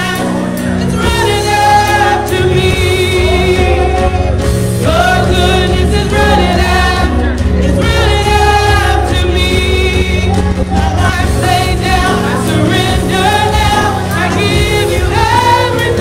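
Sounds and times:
choir singing in harmony: 0.0s - 16.0s
instrumental accompaniment with bass: 0.0s - 16.0s.

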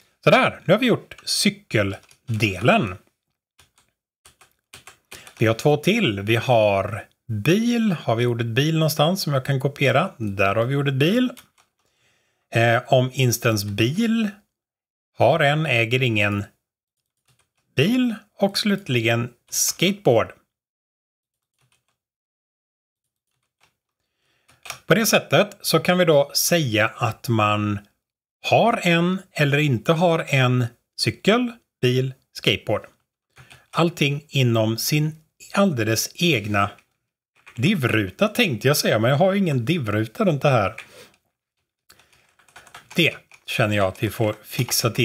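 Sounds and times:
computer keyboard keystrokes: 3.6s - 5.4s, 17.2s - 17.7s, 21.5s - 22.0s, 24.5s - 24.9s, 41.9s - 43.4s.

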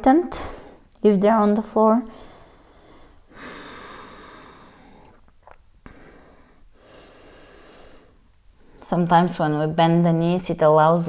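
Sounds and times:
person breathing slowly: 2.1s - 5.2s, 5.8s - 8.8s.

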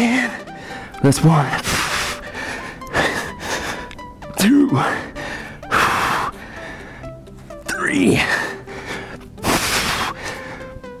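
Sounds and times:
man breathing hard: 0.0s - 11.0s.

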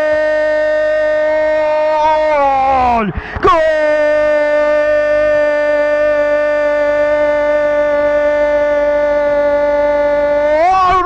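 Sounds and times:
commentator shouting goal: 0.0s - 11.0s.

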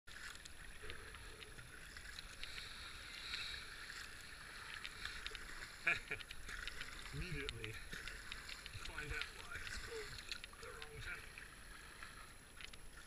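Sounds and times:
paddle splashing through water: 0.1s - 13.0s
water dripping: 0.1s - 13.0s.

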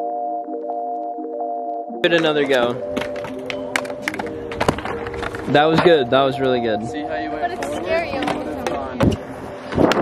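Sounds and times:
background music with held notes: 0.0s - 9.8s
skateboard knocking on concrete: 2.2s - 6.0s, 7.5s - 9.2s.

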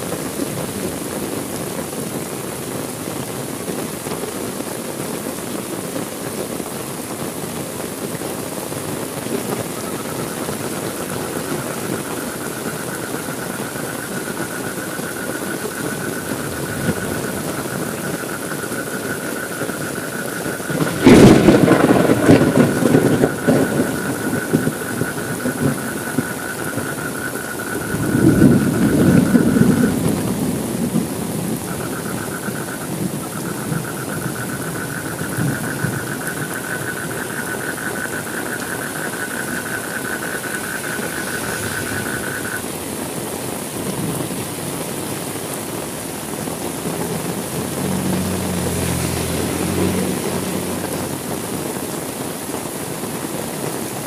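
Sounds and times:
heavy rain: 0.0s - 54.0s
thunder rumbling: 9.5s - 44.4s.

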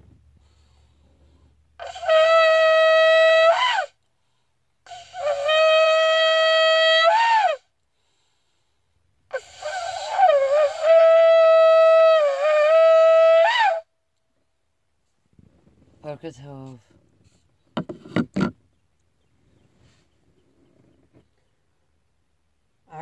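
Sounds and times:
shofar blasts: 1.8s - 4.0s, 4.9s - 7.6s, 9.3s - 13.9s.

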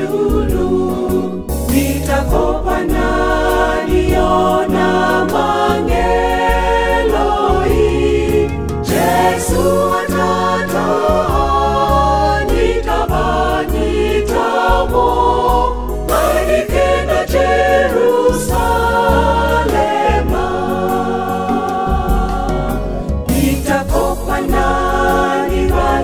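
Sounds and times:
choir singing gospel: 0.0s - 26.0s
sustained low bass notes: 0.0s - 26.0s.

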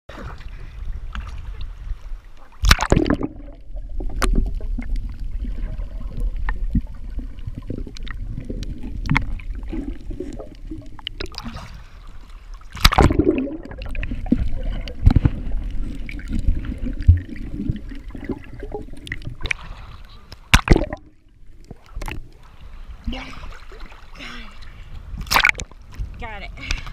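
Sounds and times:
muffled underwater rumble: 0.1s - 26.9s
water sloshing and gurgling: 0.1s - 26.9s
loud water splashes: 2.6s - 3.5s, 12.7s - 13.9s, 25.2s - 25.6s.

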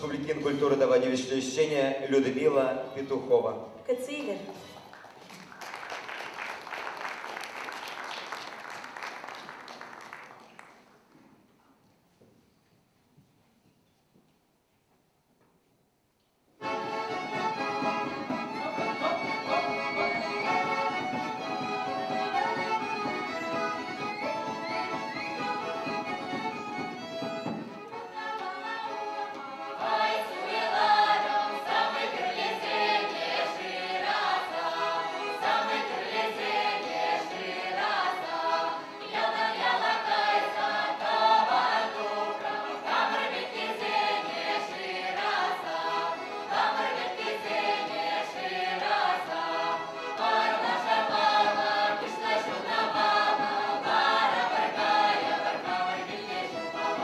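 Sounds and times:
button accordion: 16.6s - 57.0s
fiddle: 16.6s - 57.0s
group singing folk song: 16.6s - 57.0s.

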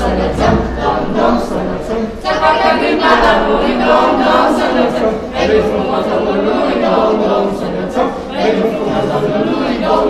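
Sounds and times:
children singing a carol: 0.0s - 10.0s.

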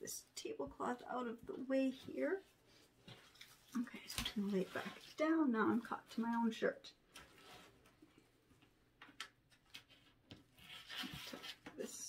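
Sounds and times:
faint clicks and rustles: 1.9s - 11.8s.

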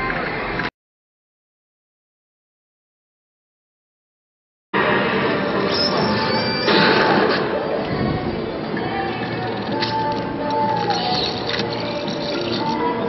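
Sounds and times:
casino floor background noise: 9.0s - 13.0s.

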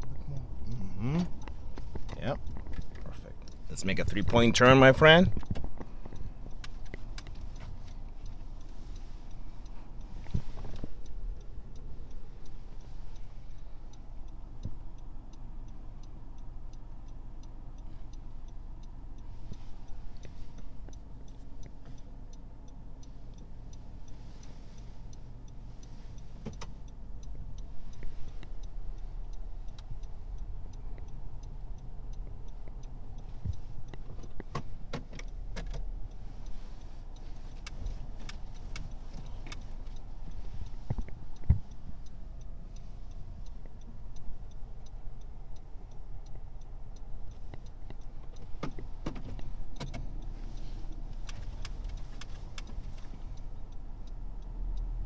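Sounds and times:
engine and road rumble in car: 0.0s - 55.0s
turn signal ticking: 0.0s - 55.0s
sharp clicks: 25.8s - 53.8s.

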